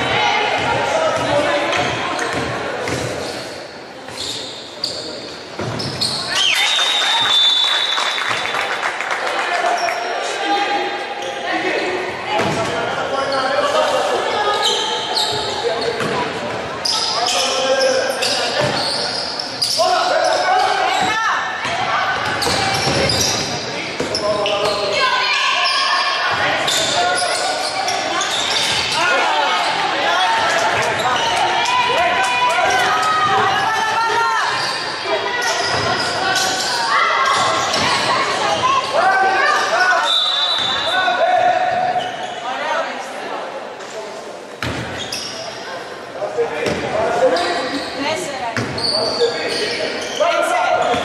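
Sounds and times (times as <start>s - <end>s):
shoe squeaks: 3.2s - 7.6s, 14.4s - 16.2s, 16.8s - 21.2s, 22.2s - 29.9s, 34.4s - 41.0s, 41.9s - 42.6s, 44.8s - 45.6s, 47.2s - 51.0s
basketball bouncing on wooden court: 48.6s - 48.8s.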